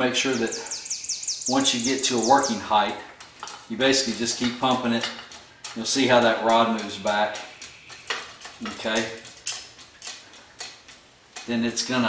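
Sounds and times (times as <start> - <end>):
sharp metal clicks: 0.6 - 12.0.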